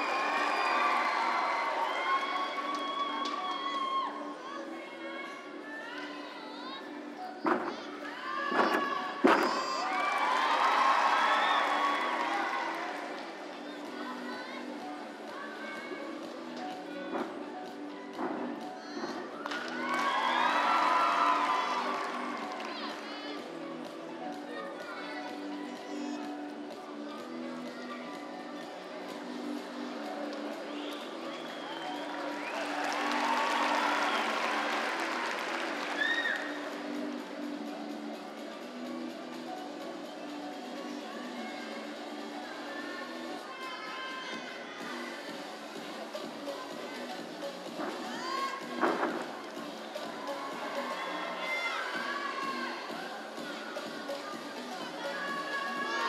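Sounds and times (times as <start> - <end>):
crowd cheering: 0.0 - 4.3, 8.6 - 13.5, 19.3 - 23.0, 30.9 - 36.9
crowd chatter and shouts: 0.0 - 56.0
faint background music: 0.0 - 56.0.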